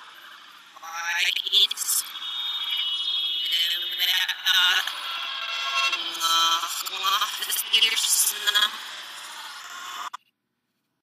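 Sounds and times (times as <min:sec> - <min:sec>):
reversed audio hiss: 0:00.0 - 0:10.1.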